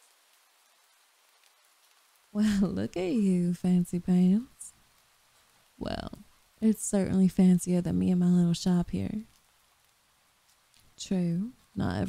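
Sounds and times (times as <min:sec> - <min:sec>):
faint rain hiss: 0:00.0 - 0:12.0.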